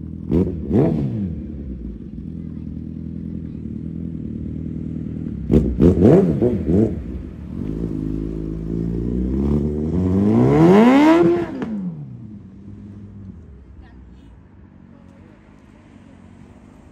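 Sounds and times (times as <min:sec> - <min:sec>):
motorcycle engine accelerating: 0:00.0 - 0:13.4.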